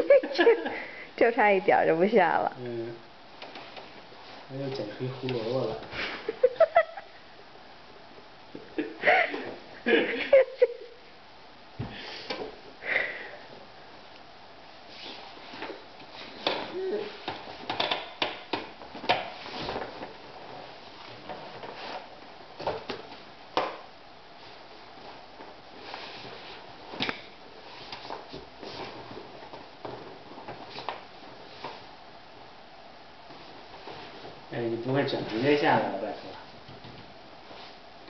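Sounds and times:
steady room hiss: 0.0 - 38.0
person sniffing: 11.9 - 13.4.

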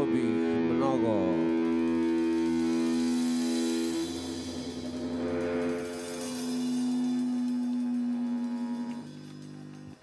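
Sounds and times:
distorted electric guitar notes: 0.0 - 10.0.

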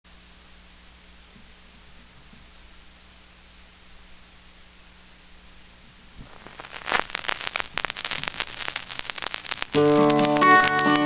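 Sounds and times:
low hiss: 0.1 - 11.0
vinyl crackle and pops: 5.4 - 11.0.

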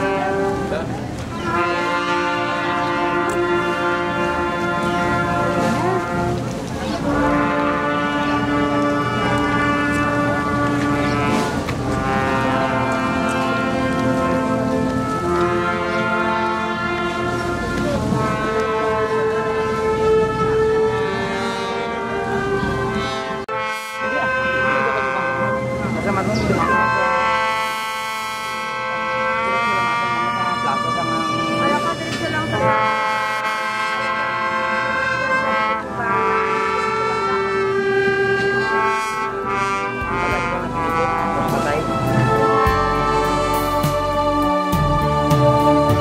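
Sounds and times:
brass band playing: 0.0 - 46.0.

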